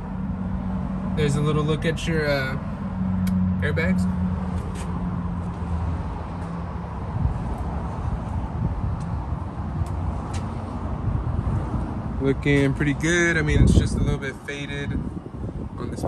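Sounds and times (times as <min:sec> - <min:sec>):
low rumble of outdoor noise: 0:00.0 - 0:16.0.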